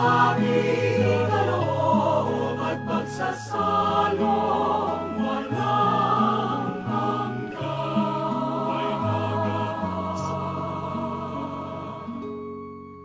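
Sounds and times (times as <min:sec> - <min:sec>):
choir singing a hymn: 0:00.0 - 0:12.6
sustained accompaniment chords: 0:00.0 - 0:13.0.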